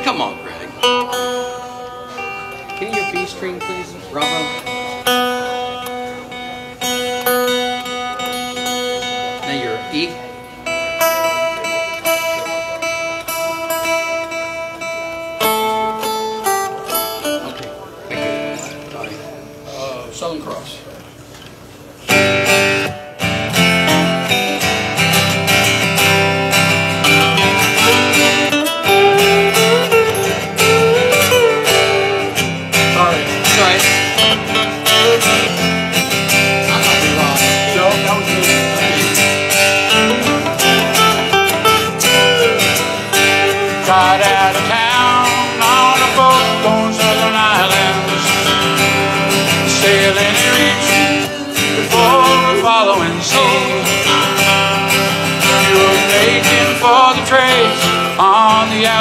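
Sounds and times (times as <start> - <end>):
acoustic guitars playing: 0.0 - 59.0.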